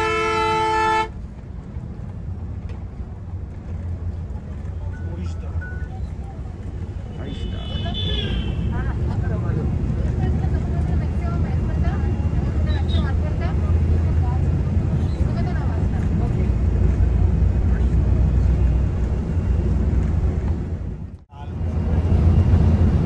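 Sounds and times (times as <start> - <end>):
bus engine and road drone: 0.0 - 23.0.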